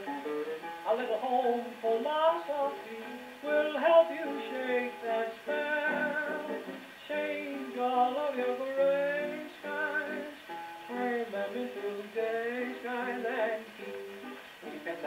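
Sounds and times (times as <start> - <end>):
gramophone record playing song: 0.0 - 15.0.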